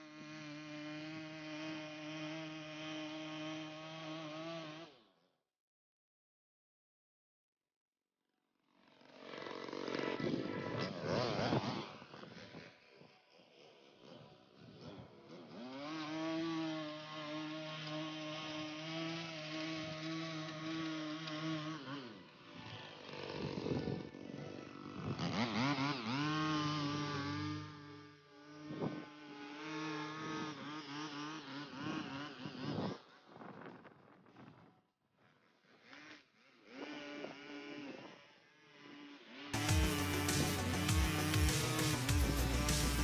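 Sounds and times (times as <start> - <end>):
lawn edger cutting grass: 0.0 - 5.2, 8.7 - 43.0.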